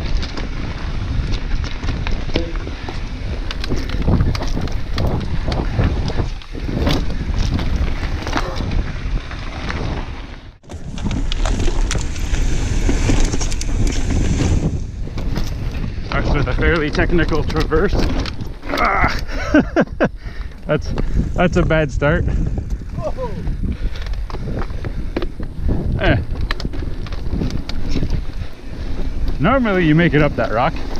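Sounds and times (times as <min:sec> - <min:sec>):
bike rattling over bumps: 0:00.0 - 0:30.9
bike tyres rumbling: 0:00.0 - 0:30.9
wind buffeting microphone: 0:00.0 - 0:30.9.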